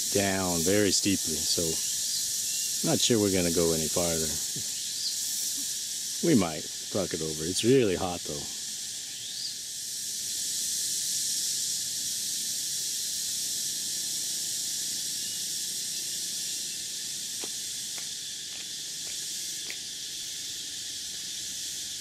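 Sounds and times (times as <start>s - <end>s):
insect chorus droning: 0.0s - 22.0s.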